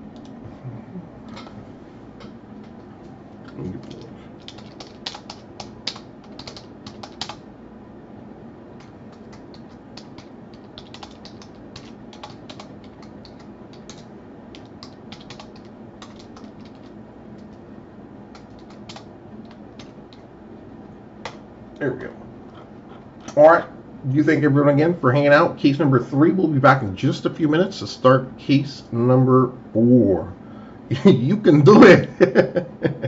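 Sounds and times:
low background hum: 0:00.0 - 0:33.0
keyboard typing: 0:02.6 - 0:07.4, 0:08.8 - 0:17.6, 0:18.3 - 0:20.3.

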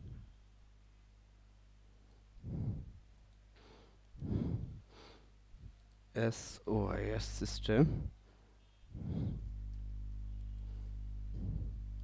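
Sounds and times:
soft breath: 0:02.4 - 0:05.8, 0:07.7 - 0:12.0.

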